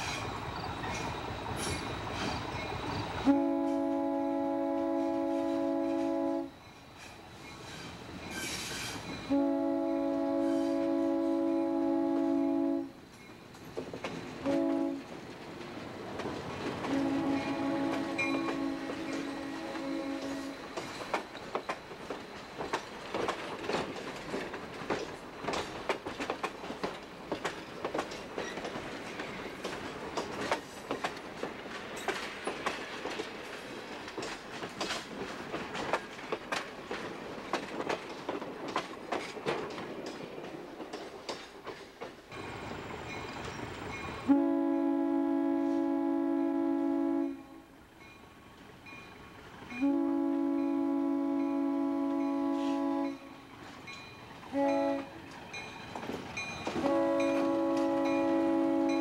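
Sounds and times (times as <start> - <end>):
train wheels clattering over rail joints: 0.0 - 3.0, 6.8 - 9.3, 13.0 - 42.4, 55.2 - 59.0
locomotive air horn: 3.2 - 6.5, 9.3 - 13.0, 14.4 - 15.1, 16.8 - 20.7, 44.2 - 47.8, 49.7 - 53.4, 54.5 - 55.2, 56.8 - 59.0.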